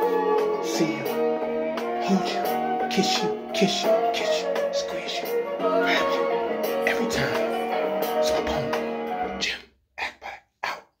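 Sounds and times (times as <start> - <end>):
background music: 0.0 - 9.6.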